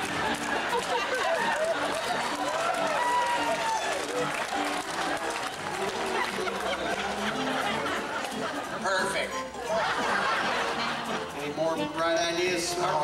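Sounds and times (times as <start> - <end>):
audience applauding: 0.0 - 8.8
music playing: 0.0 - 13.0.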